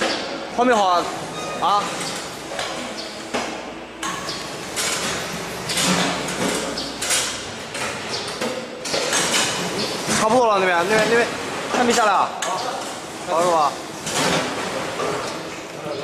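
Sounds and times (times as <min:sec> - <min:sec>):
metallic knocks and clatter: 0:02.0 - 0:12.6.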